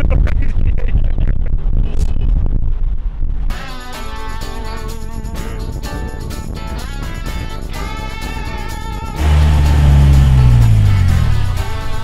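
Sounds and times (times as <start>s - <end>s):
wind and road rumble: 0.0s - 3.5s, 5.5s - 12.0s
guitar music: 3.5s - 12.0s.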